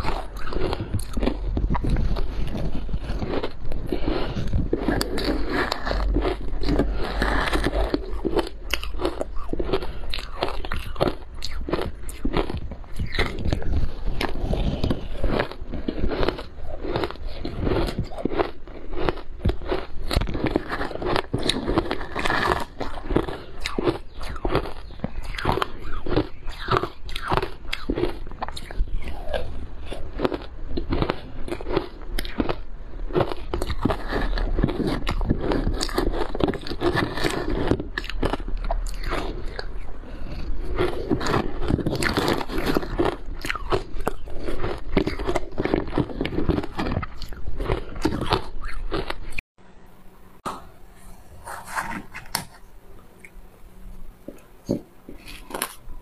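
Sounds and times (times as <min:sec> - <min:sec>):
crunching and chewing ice: 0:00.0 - 0:49.4, 0:51.5 - 0:56.0.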